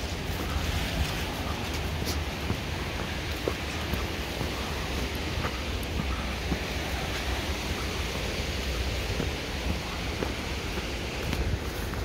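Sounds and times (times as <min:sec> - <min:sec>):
footsteps on trail: 0:00.0 - 0:12.0
wind on microphone: 0:00.0 - 0:12.0.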